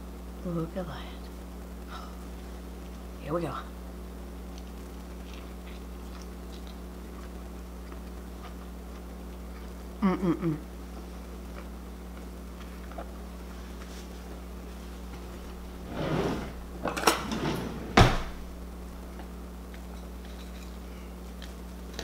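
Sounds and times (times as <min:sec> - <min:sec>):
steady low hum: 0:00.0 - 0:22.0
kitchen clatter: 0:16.1 - 0:18.5.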